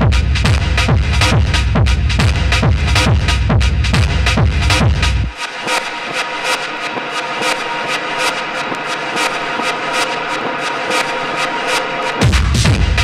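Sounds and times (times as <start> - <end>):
techno breakdown from vinyl: 0.0 - 13.0.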